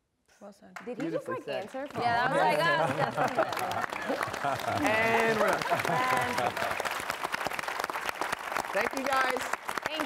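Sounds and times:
audience applauding: 0.8 - 10.0.

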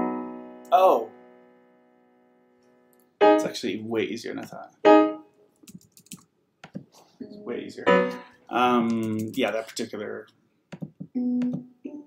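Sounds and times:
electric piano chord: 0.0 - 2.1, 7.3 - 8.3.

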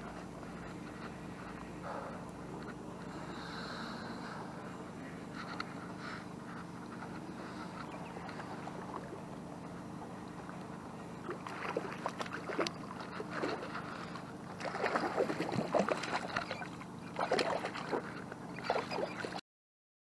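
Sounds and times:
fish splashing in water: 11.2 - 19.4.

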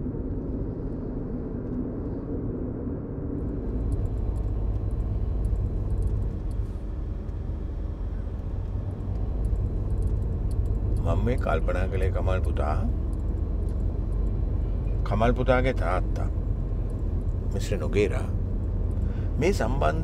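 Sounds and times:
car engine and road noise: 3.3 - 20.0.

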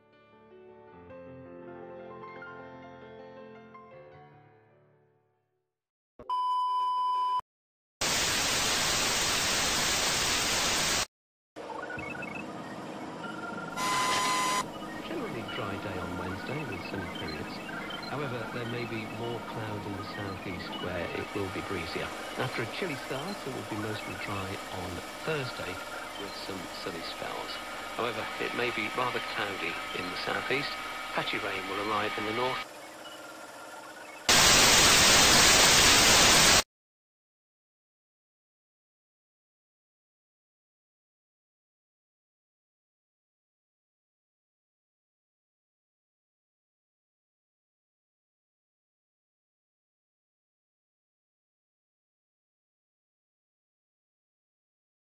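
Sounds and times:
tv static hiss: 8.0 - 11.1, 13.8 - 32.7, 34.2 - 36.6
small beeps: 13.2 - 15.8
test-tone beep: 13.7 - 19.8
garbled voice-like sounds: 15.1 - 32.6.

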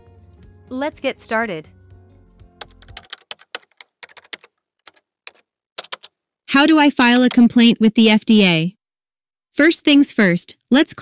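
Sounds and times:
background music: 0.0 - 3.6
keyboard key clicks: 7.0 - 7.5.

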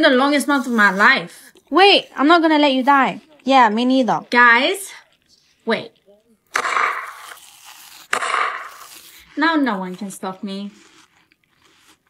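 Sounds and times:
crunchy food bites: 6.5 - 9.4, 10.6 - 12.0.

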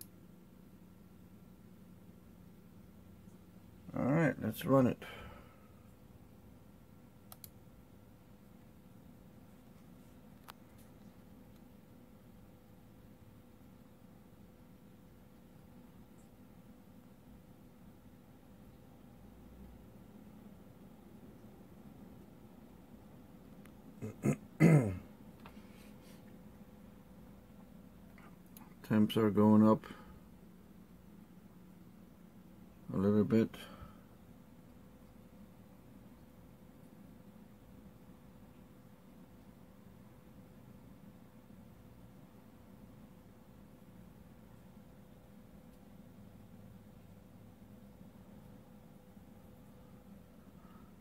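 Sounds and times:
faint low hum: 0.0 - 51.0
computer mouse click: 7.2 - 7.6
man clearing his throat: 24.0 - 25.1.

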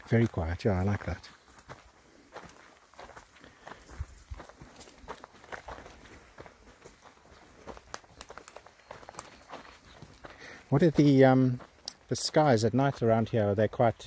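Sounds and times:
footsteps on sandy dirt: 0.0 - 14.0.

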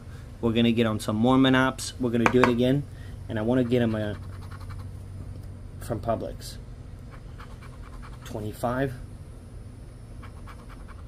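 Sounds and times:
steady low hum: 0.0 - 11.0
scratching lottery ticket: 3.6 - 4.9, 7.1 - 8.4, 10.2 - 11.0.

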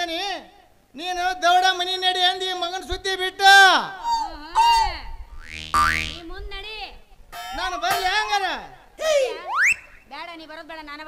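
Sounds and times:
springy boing: 4.6 - 6.3, 7.4 - 8.8
low held chord: 7.4 - 8.7
voice: 7.6 - 9.5.

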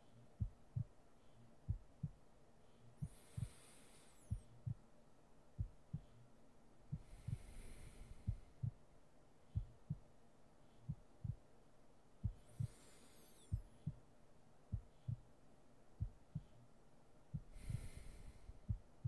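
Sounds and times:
soft breaths: 0.0 - 11.6, 12.2 - 19.0
slow heartbeat thumps: 0.4 - 1.0, 1.6 - 2.2, 3.0 - 4.8, 5.5 - 6.2, 6.9 - 8.9, 9.5 - 10.1, 10.8 - 11.5, 12.2 - 12.9, 13.5 - 14.0, 14.7 - 15.3, 16.0 - 16.6, 17.3 - 19.0.

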